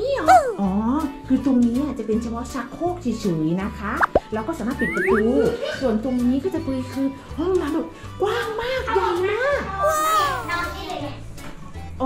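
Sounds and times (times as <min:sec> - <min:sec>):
woman talking: 0:00.0 - 0:07.9
children's voices: 0:09.8 - 0:11.2.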